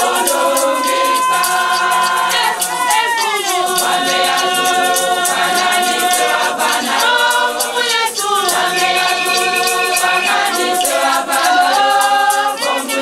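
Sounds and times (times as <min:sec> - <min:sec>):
hand shaker rattling: 0:00.0 - 0:13.0
women's choir singing: 0:00.0 - 0:13.0.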